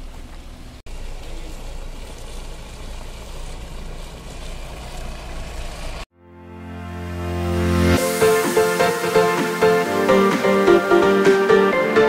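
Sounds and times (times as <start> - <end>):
diesel engine rumbling: 0.0 - 6.1
music: 6.2 - 12.0.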